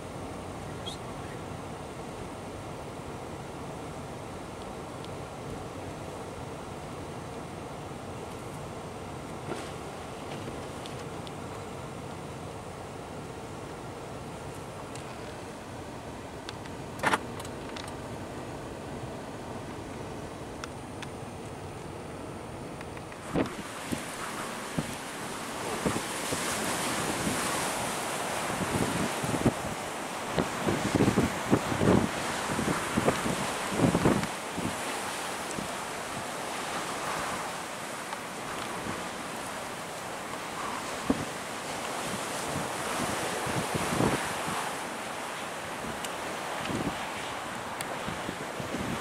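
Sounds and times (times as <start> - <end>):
rush of wind: 0.0 - 49.0
wind gusts thumping microphone: 23.2 - 49.0.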